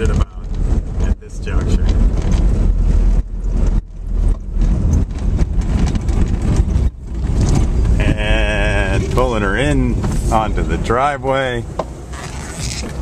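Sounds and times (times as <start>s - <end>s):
tyre and road noise: 0.0s - 13.0s
wind rumble on microphone: 0.0s - 13.0s.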